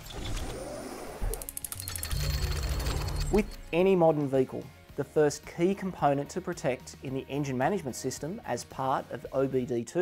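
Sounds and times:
background music: 0.2 - 10.0.

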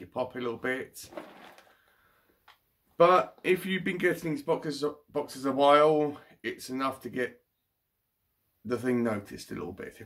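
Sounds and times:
cardboard box rustling: 1.1 - 1.6.

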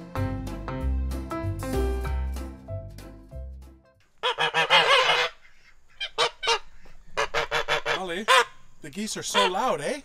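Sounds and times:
geese honking: 4.2 - 10.0.

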